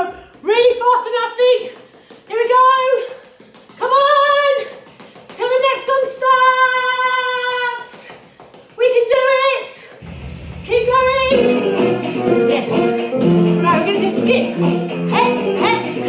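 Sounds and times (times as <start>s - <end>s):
woman singing dance song: 0.0s - 10.0s, 10.6s - 16.0s.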